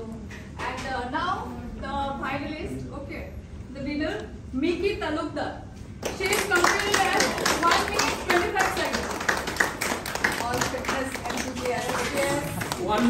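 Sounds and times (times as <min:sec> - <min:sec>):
group applauding: 0:06.0 - 0:13.0.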